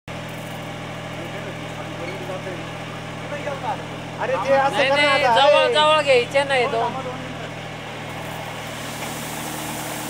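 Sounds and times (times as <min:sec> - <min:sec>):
sprayer engine humming: 0:08.0 - 0:10.0.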